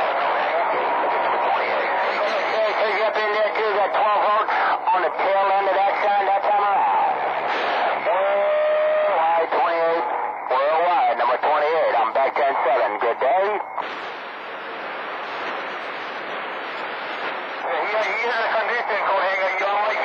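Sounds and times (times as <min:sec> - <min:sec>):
radio static hiss: 0:00.0 - 0:20.0
radio voices: 0:00.0 - 0:20.0.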